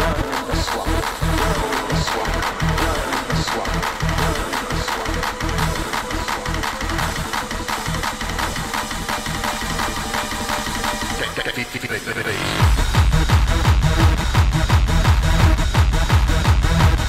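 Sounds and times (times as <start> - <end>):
percussive beat: 0.0 - 11.4, 12.6 - 17.0
rave dance music: 0.0 - 17.0
heavy bass hits: 12.6 - 17.0.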